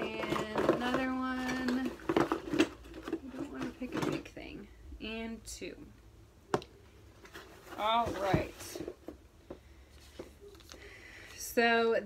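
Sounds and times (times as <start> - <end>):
rustling in cardboard box: 7.2 - 9.1.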